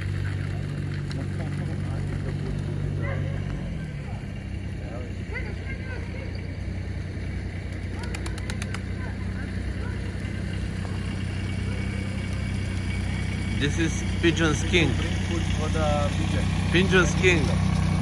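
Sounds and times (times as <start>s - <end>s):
faint voices: 0.0s - 17.7s
vehicle engine idling: 0.0s - 18.0s.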